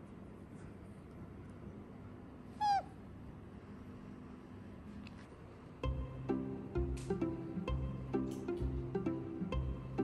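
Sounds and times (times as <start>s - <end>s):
plucked-string music: 5.8s - 10.0s.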